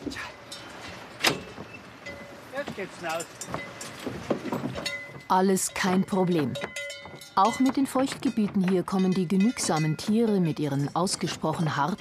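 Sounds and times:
knocks on wooden ramp and metal grate: 0.7 - 11.8.

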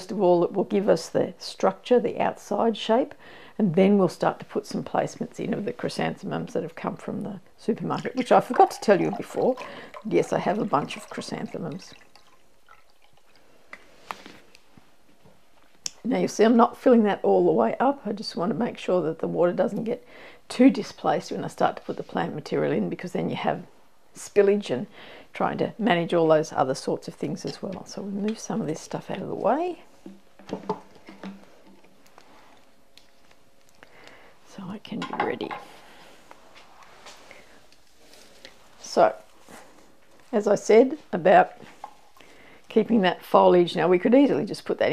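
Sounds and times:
water dripping and trickling: 8.0 - 13.5.

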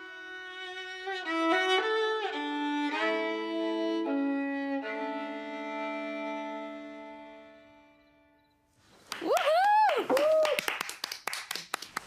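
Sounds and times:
solo violin bowed: 0.0 - 8.6.

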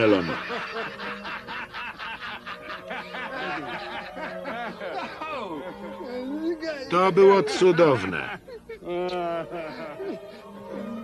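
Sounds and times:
hearty male laughter: 0.0 - 6.3, 7.4 - 10.8.

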